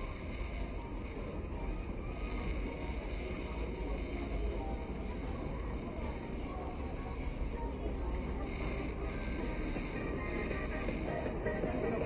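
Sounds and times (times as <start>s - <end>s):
faint music: 0.0s - 12.0s
indistinct voices: 0.0s - 12.0s
low street rumble: 0.0s - 12.0s.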